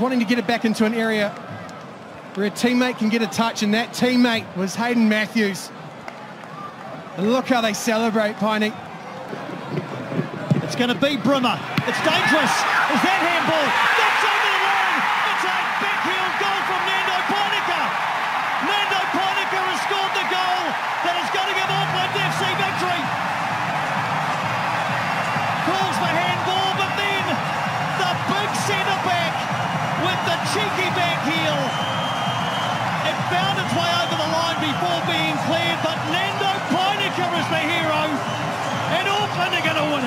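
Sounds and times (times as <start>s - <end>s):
stadium crowd roaring and cheering: 0.0s - 40.0s
crowd shouting and singing: 9.0s - 40.0s.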